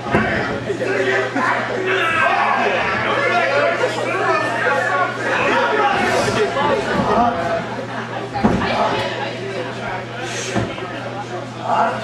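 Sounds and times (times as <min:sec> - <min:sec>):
crowd talking and calling out: 0:00.0 - 0:12.0
low electrical hum: 0:00.0 - 0:12.0.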